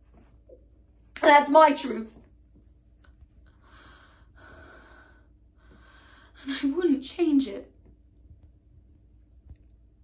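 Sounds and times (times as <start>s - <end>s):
woman breathing faintly: 3.4s - 6.4s.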